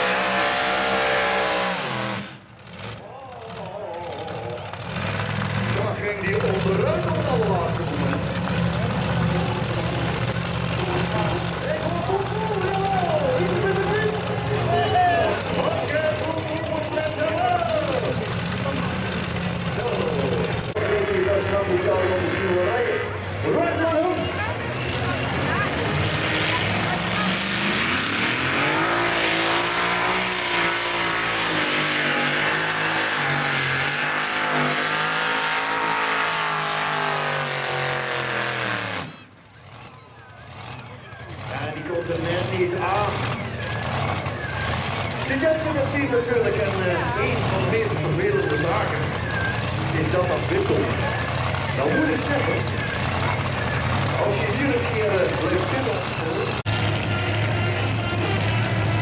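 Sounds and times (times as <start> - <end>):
tractor engine revving: 0.0 - 59.0
tractor engine idling: 2.4 - 27.4, 39.2 - 59.0.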